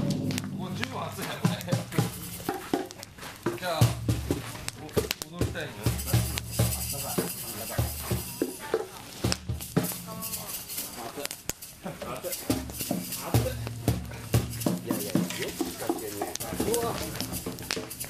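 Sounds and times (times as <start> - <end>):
bright hiss: 0.0 - 18.0
people talking and calling out: 0.0 - 18.0
sharp cracks: 0.0 - 18.0.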